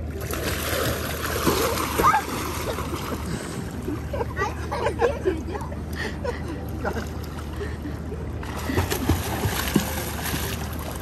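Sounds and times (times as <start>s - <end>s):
water splashing: 0.0s - 4.1s, 8.4s - 11.0s.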